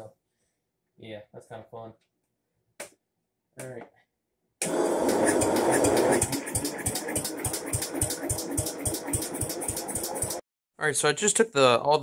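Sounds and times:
lawn tractor engine cranking: 0:04.6 - 0:10.4.

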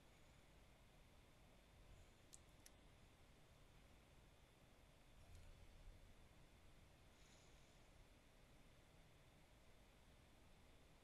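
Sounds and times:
small sharp clicks: 0:02.2 - 0:02.8.

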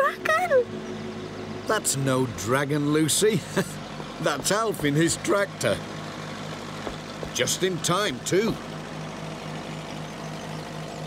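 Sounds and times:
tractor engine droning: 0:00.0 - 0:11.0.

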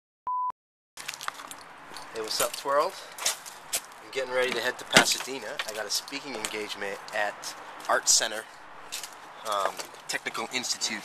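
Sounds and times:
outdoor background noise: 0:01.0 - 0:11.0.

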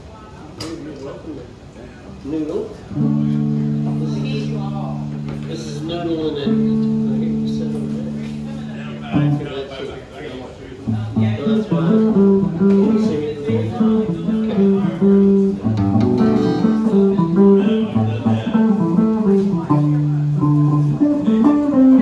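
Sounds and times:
electric and acoustic guitars: 0:02.9 - 0:09.7, 0:10.8 - 0:22.0.

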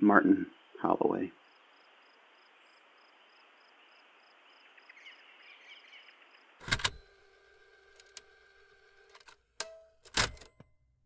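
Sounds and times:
insects chirping: 0:00.1 - 0:07.8
loud click-clunk: 0:09.2 - 0:10.7.

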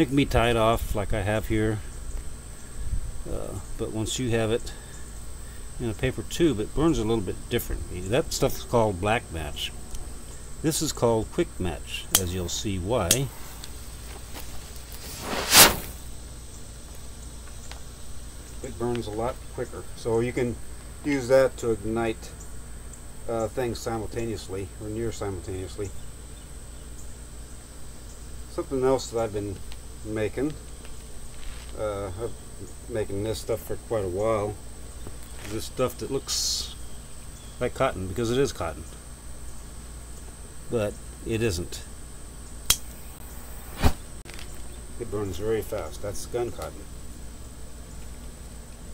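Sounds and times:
fuse whooshing: 0:14.4 - 0:16.1, 0:43.0 - 0:44.1
guncotton flashing whoosh: 0:15.0 - 0:16.0.

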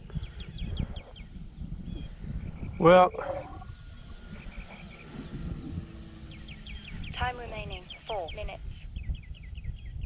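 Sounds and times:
distant birds chirping: 0:00.0 - 0:10.0
wind buffeting microphone: 0:00.0 - 0:10.0.

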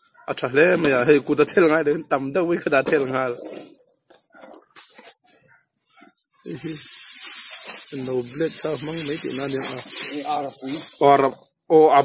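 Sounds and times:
man talking: 0:00.3 - 0:03.5, 0:06.4 - 0:06.9, 0:07.9 - 0:12.0
steady high hiss: 0:06.4 - 0:11.3.

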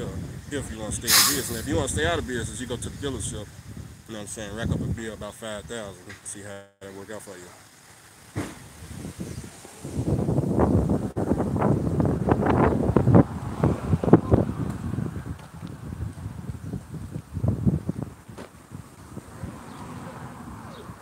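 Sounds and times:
wind buffeting microphone: 0:00.0 - 0:05.9, 0:08.6 - 0:21.0.

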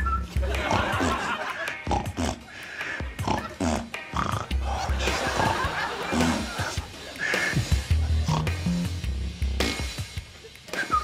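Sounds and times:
background music: 0:00.0 - 0:11.0
man snorting through nose: 0:01.9 - 0:05.5, 0:06.1 - 0:08.7
man blowing raspberries: 0:06.1 - 0:08.9.

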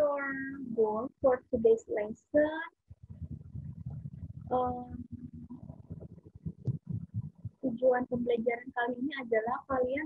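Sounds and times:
low uneven microphone rumble: 0:00.0 - 0:10.0.

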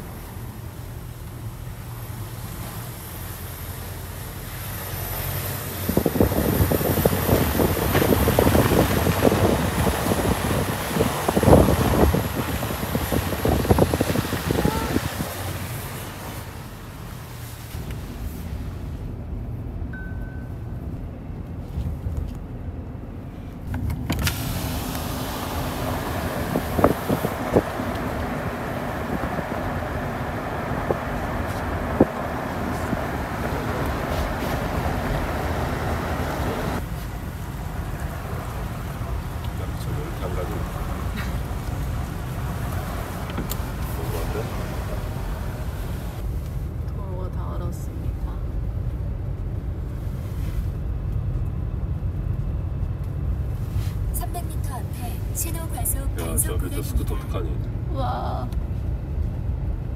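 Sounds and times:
road and tyre noise inside vehicle: 0:00.0 - 0:59.9
rush of traffic and wind: 0:00.0 - 0:59.9.

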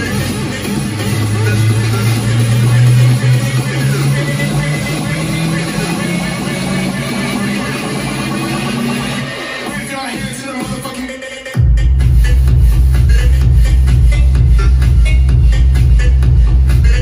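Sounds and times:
loud music through speakers: 0:00.0 - 0:17.0.

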